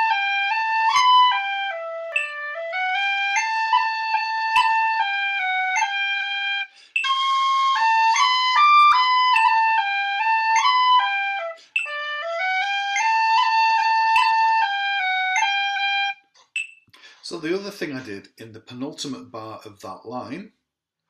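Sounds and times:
tin whistle playing a jig: 0:00.0 - 0:16.8.

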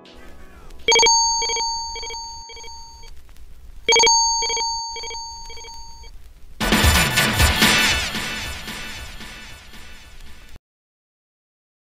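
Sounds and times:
telephone ringing: 0:00.0 - 0:03.1, 0:03.9 - 0:06.1
loud music: 0:06.6 - 0:10.6.

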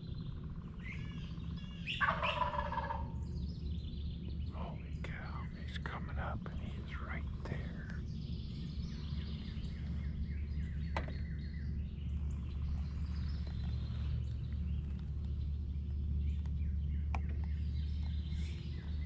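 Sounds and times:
low steady rumble: 0:00.0 - 0:19.0
songbirds singing and chirping: 0:00.0 - 0:19.0.

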